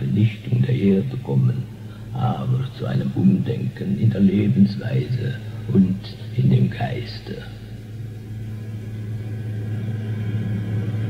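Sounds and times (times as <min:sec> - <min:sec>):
low tape hum: 0:00.0 - 0:11.0.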